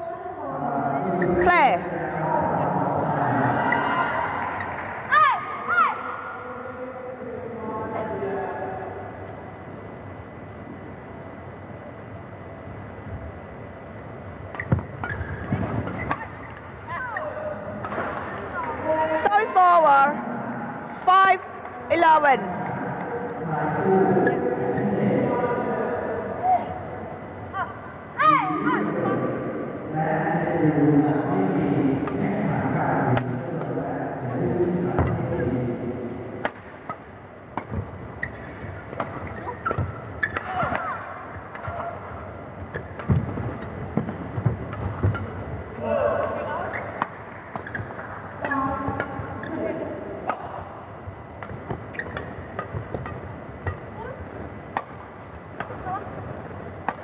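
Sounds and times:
murmur of voices: 0.0 - 10.4, 16.2 - 36.5
shoes squeaking on court: 14.5 - 18.7, 37.7 - 40.6, 42.6 - 45.7, 46.6 - 49.8, 51.4 - 54.4
rackets hitting shuttlecock: 38.5 - 42.0, 54.7 - 55.8.

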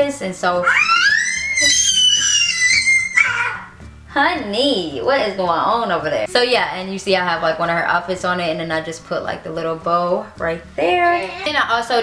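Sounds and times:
baby squealing: 0.6 - 3.8.

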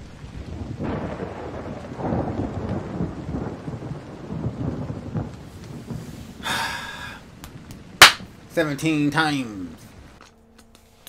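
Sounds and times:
thunder rumbling: 0.0 - 8.8
rain falling: 0.0 - 11.0.

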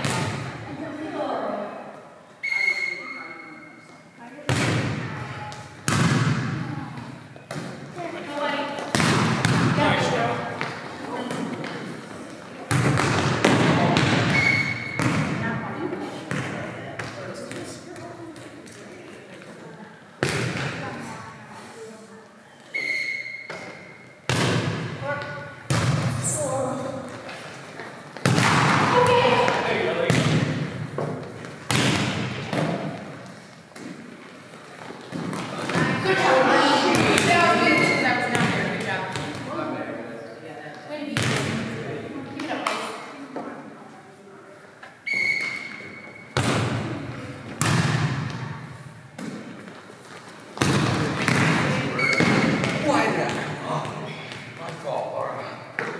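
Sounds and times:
volleyball smacks echoing in a hall: 0.0 - 0.8, 2.4 - 21.3, 22.8 - 39.9, 40.8 - 43.5, 45.1 - 55.9.

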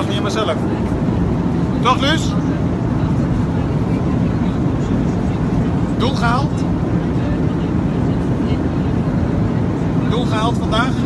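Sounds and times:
airliner cabin rumble: 0.0 - 11.0.

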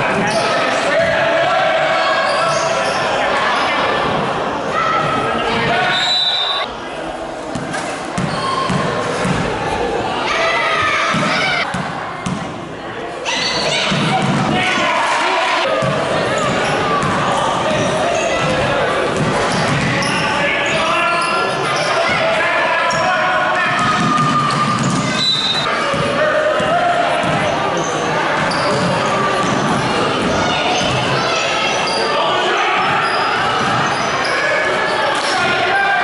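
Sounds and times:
people shouting in echoing hall: 0.0 - 6.7, 8.4 - 12.0, 13.2 - 36.0.

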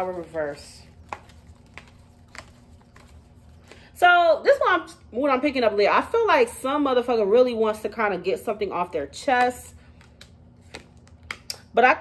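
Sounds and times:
card shuffling clicks: 0.0 - 3.8, 9.9 - 11.6.

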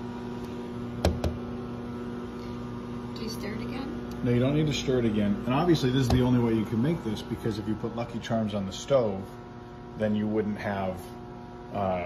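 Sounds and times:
microwave oven humming: 0.0 - 12.0.

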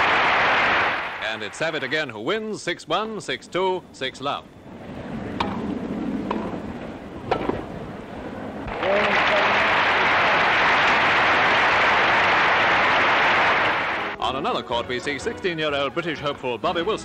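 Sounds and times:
spectators clapping: 0.0 - 2.0, 8.7 - 14.2.

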